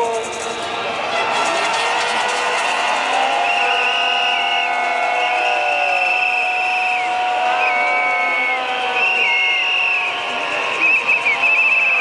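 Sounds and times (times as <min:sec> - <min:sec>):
crowd din: 0:00.0 - 0:12.0
whistles blown in trilling blasts: 0:01.2 - 0:12.0.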